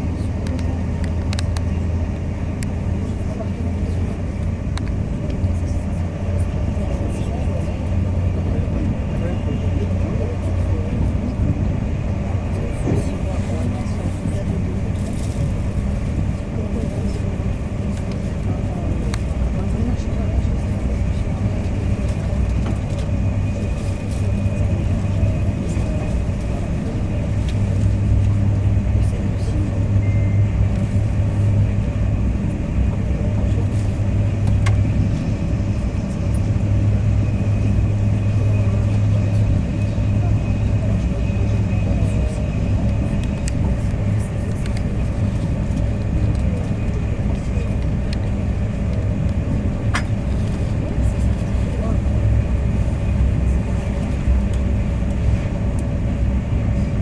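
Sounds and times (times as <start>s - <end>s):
train rumbling at speed: 0.0s - 57.0s
faint high whine: 29.0s - 31.6s.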